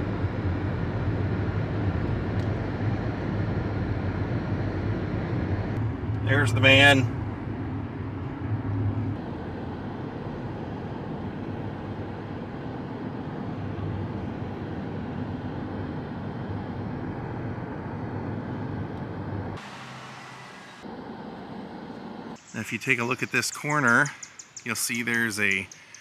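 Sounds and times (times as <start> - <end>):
tyre and wind road noise: 0.0 - 22.9
car engine hum: 0.0 - 24.0.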